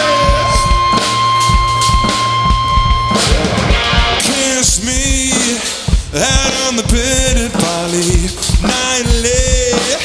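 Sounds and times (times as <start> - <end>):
drum kit kick drum: 0.0 - 10.0
electric guitars: 0.0 - 10.0.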